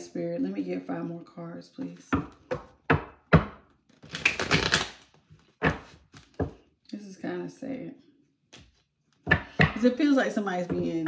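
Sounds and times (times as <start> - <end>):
cards shuffled by hand: 3.8 - 6.5.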